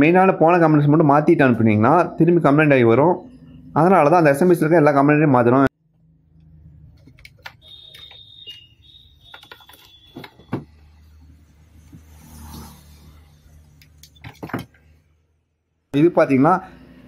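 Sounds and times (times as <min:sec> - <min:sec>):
multimeter buzzer beeping: 0:07.5 - 0:10.5.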